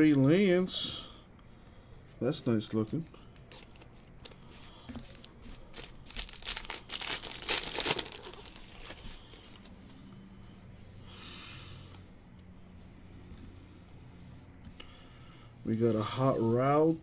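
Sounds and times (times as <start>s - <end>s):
plastic wrapper tearing and crinkling: 3.4s - 4.4s, 5.0s - 9.7s.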